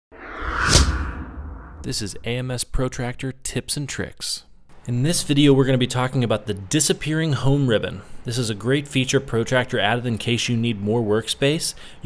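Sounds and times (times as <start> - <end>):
whoosh with low rumble hit: 0.1 - 2.2
man speaking: 1.8 - 11.8.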